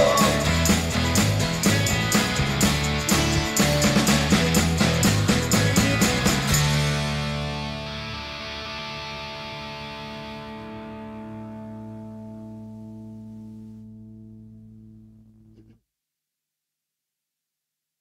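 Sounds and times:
distorted electric guitar chord: 0.0s - 15.5s.

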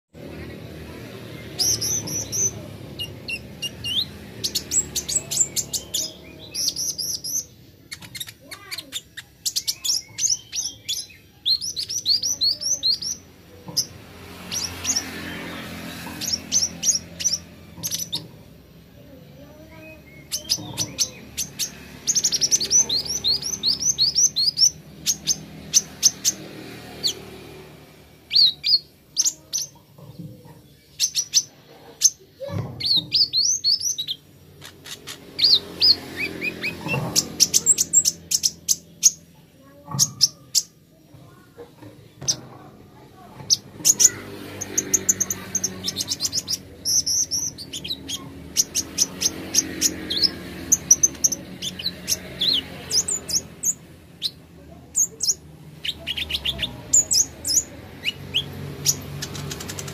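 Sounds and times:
sunbird chirping: 0.2s - 42.4s, 43.2s - 59.9s
faint voices: 0.2s - 59.9s.

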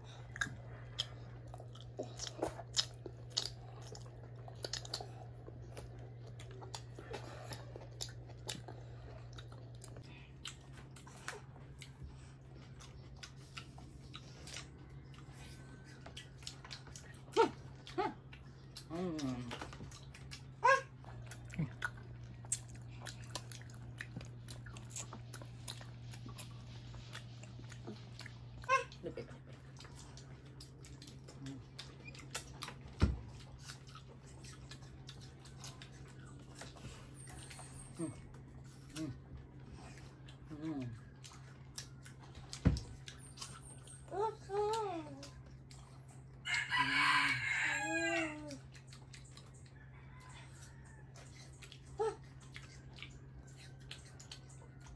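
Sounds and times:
chewing fruit: 0.0s - 54.9s
rooster crowing: 46.4s - 48.6s, 49.7s - 51.4s.

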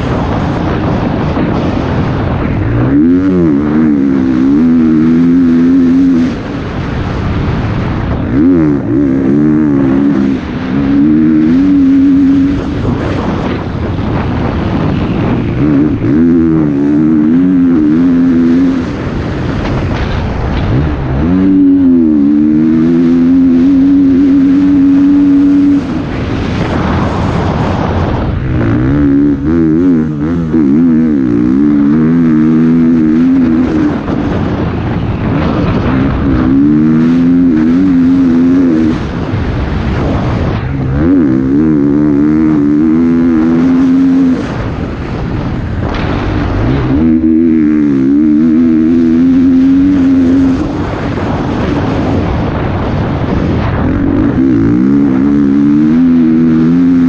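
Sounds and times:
motocross bike engine revving: 0.0s - 57.0s.

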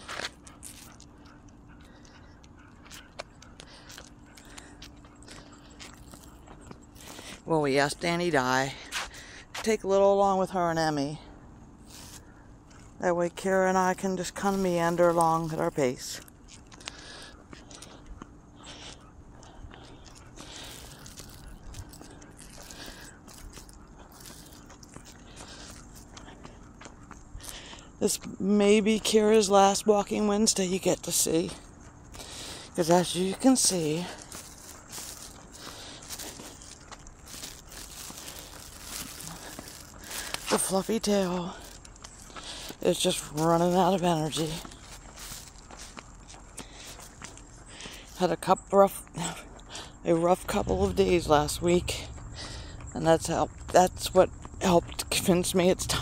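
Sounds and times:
footsteps on asphalt: 0.0s - 11.1s, 11.8s - 56.0s.

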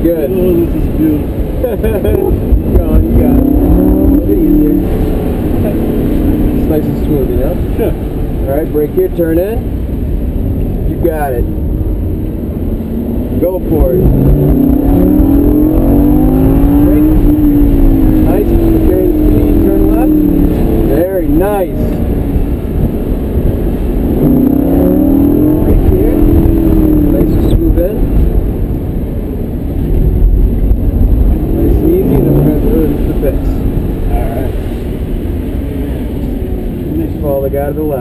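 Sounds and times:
car engine pulling hard: 0.0s - 38.0s.

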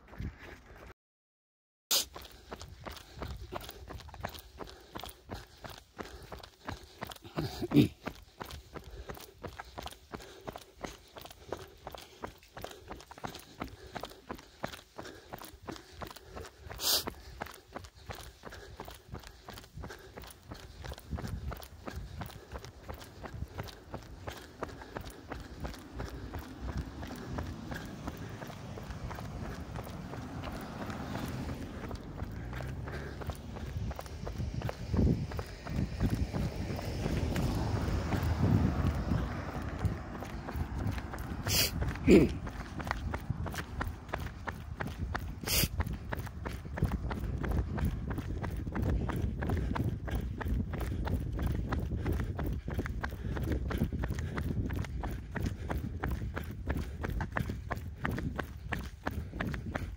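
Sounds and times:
running footsteps on asphalt: 0.0s - 1.0s, 1.9s - 59.9s
low rumble: 22.7s - 45.2s.

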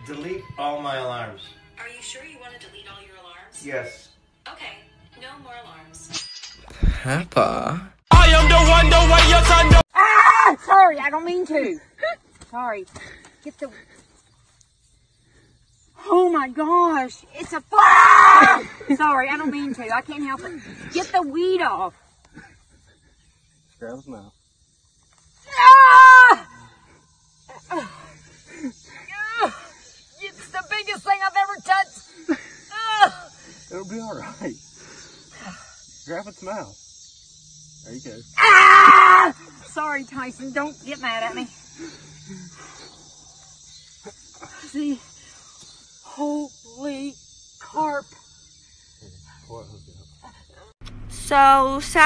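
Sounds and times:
faint voice: 6.8s - 7.9s
child shrieking: 9.9s - 10.7s, 17.8s - 18.7s, 25.5s - 26.5s, 38.4s - 39.4s
high-pitched insect drone: 13.1s - 52.0s
child crying out: 17.8s - 18.7s, 38.4s - 39.3s.

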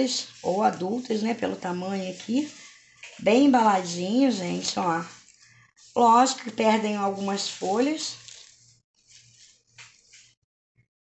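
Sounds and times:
packing paper rustling: 0.0s - 10.4s.

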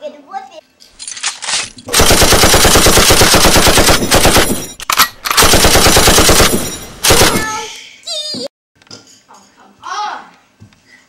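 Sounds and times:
machine gun firing: 1.9s - 7.6s.

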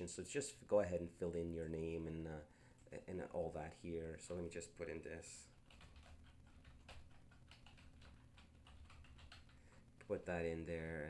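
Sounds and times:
typing on computer keyboard: 5.6s - 9.6s.

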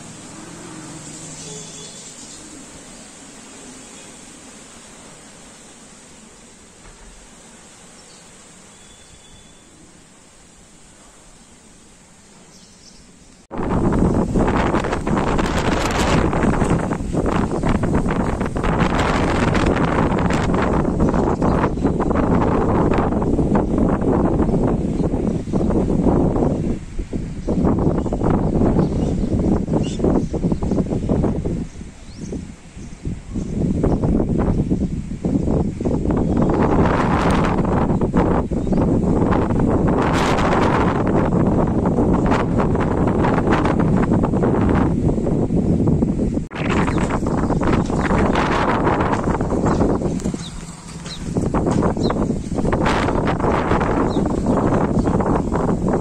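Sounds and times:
gusty wind buffeting microphone: 0.0s - 7.8s, 13.4s - 56.0s
trees and leaves rustling: 0.0s - 56.0s.

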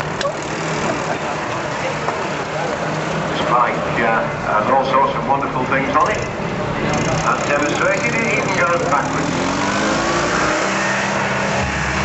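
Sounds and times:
faint voices: 0.0s - 9.4s
crowd murmur: 0.0s - 12.0s
motorcycle engine running: 6.0s - 12.0s.

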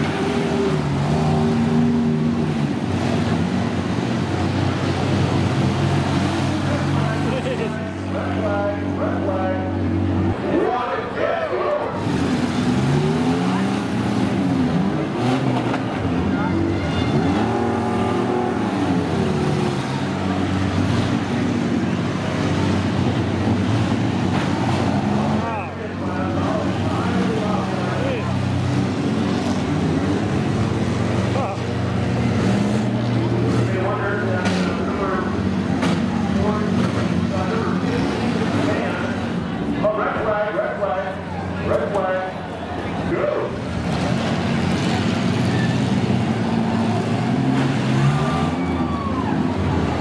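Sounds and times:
engines revving hard: 0.0s - 50.0s.

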